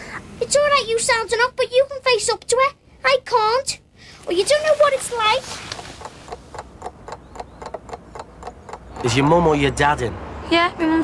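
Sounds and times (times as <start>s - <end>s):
quick even ticking: 5.4s - 9.5s.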